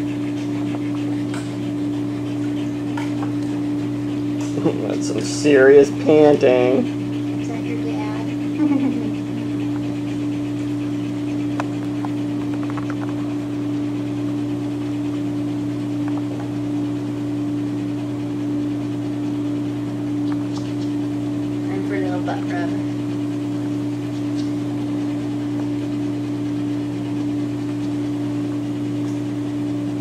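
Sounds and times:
loud steady mechanical hum: 0.0s - 30.0s.

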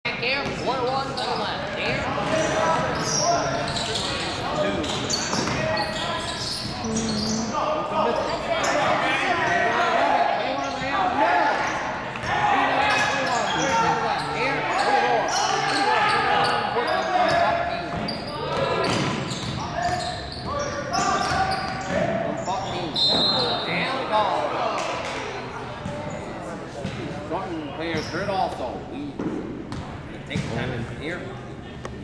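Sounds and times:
players' voices and calls: 0.1s - 32.0s.

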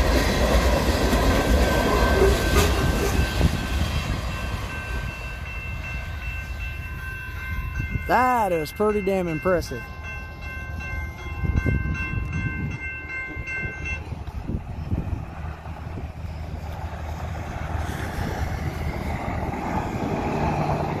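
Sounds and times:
crossing warning bell ringing: 0.0s - 21.0s
freight train rumbling on rails: 0.0s - 21.0s.

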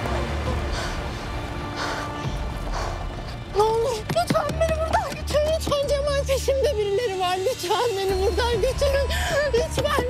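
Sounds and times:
tense drama score: 0.0s - 10.0s.

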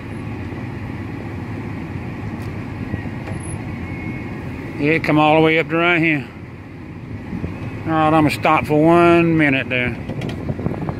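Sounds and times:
car driving low rumble: 0.0s - 10.9s.

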